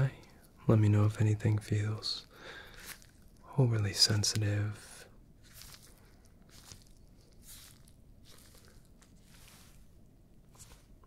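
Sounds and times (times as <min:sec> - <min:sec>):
fingertips rustling on microphone: 0:04.0 - 0:11.0.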